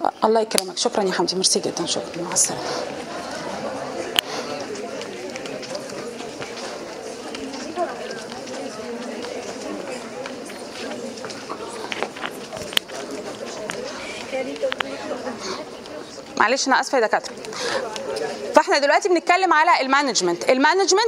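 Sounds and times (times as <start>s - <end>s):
murmur of many voices: 0.0s - 21.0s.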